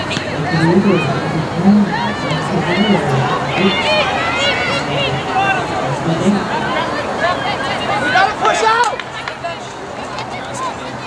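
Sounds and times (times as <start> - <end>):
distant voices and shouts: 0.0 - 11.0.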